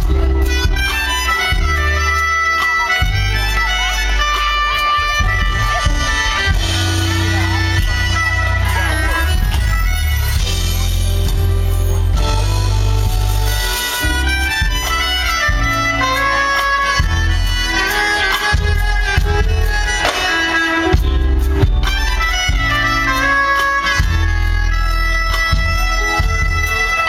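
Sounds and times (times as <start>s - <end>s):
drums: 0.0s - 27.0s
electric bass: 0.0s - 27.0s
soprano saxophone melody: 0.1s - 27.0s.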